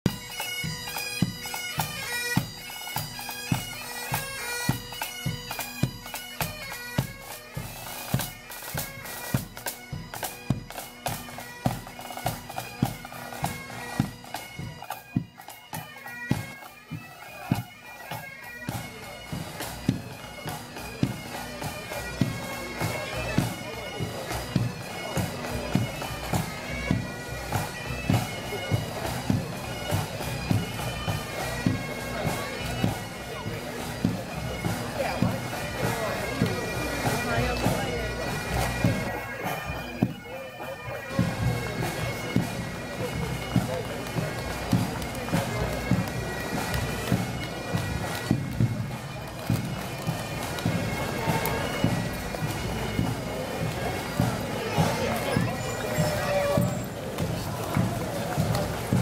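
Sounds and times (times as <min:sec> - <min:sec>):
bagpipes playing a tune: 0:00.0 - 0:59.0
marching drums beating: 0:00.1 - 0:40.2, 0:41.1 - 0:59.0.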